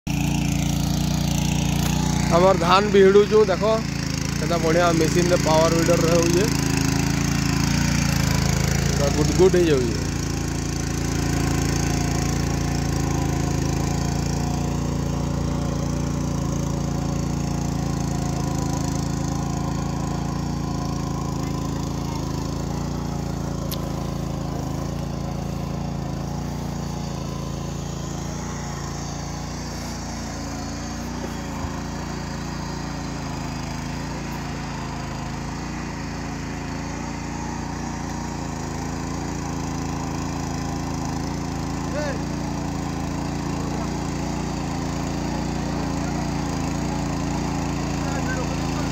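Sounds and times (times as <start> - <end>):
power weeder engine running: 0.0 - 48.9.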